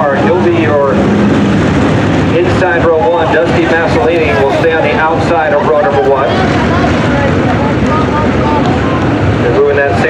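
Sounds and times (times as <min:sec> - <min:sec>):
race car engines: 0:00.0 - 0:10.0.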